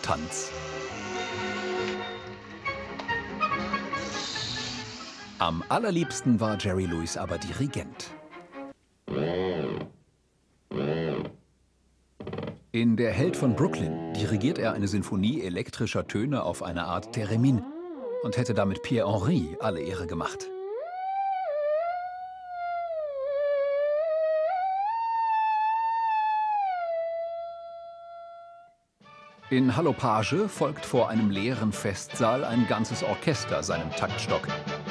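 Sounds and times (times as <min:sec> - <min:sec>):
swooping electronic theremin tones: 0:16.8 - 0:28.7.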